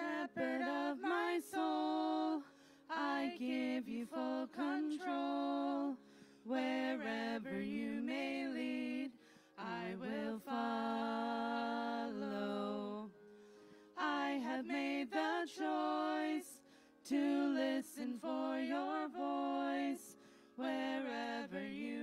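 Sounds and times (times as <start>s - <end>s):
person singing worship song: 0.0s - 22.0s.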